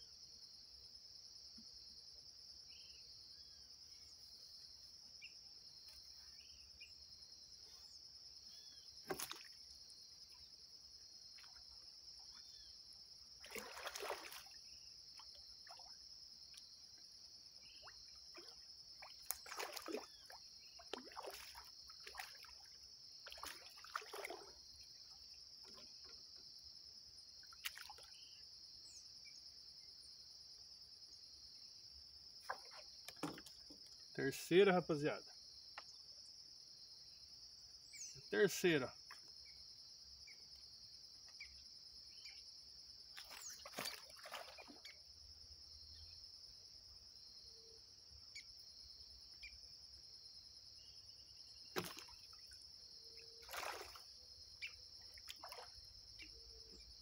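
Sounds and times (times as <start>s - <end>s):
insects droning: 0.0s - 57.0s
water splashing: 9.0s - 9.6s, 13.4s - 14.6s, 17.8s - 24.6s, 43.2s - 44.9s, 51.7s - 52.6s, 53.4s - 54.1s, 55.2s - 55.8s.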